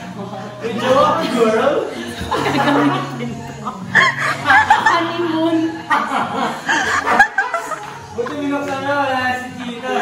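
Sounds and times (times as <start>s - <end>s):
woman giggling: 3.9s - 5.2s.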